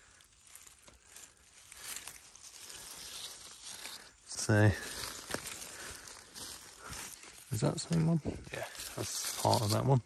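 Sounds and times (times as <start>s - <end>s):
hand rustling dry leaves: 0.0s - 10.0s.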